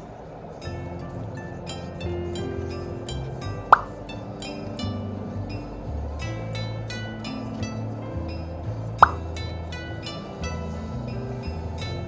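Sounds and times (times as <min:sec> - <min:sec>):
plucked background music: 0:00.4 - 0:12.0.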